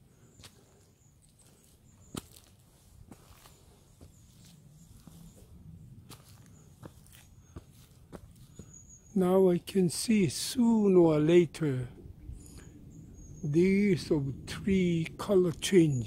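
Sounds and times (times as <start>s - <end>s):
footsteps on dry leaves: 0.4s - 8.7s.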